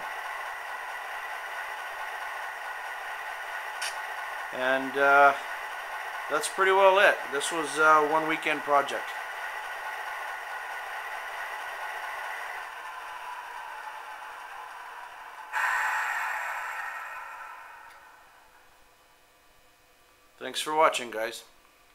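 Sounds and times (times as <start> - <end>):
model locomotive engine idling: 0.0 - 18.7
loud rushing sound: 15.5 - 18.7.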